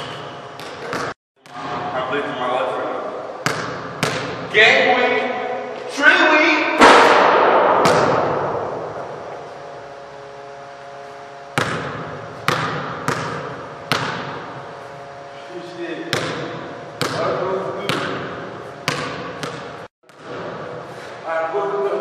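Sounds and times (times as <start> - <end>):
basketball banging backboard and rim: 0.6 - 2.0, 3.4 - 4.5, 6.8 - 9.4, 11.5 - 14.6, 16.1 - 20.7
ball bouncing on hardwood floor: 7.8 - 8.2, 11.6 - 14.3, 18.9 - 20.3.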